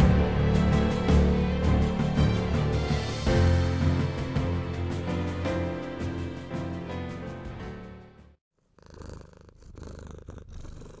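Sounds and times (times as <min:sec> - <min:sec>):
background music: 0:00.0 - 0:08.4
cat purring: 0:08.6 - 0:11.0.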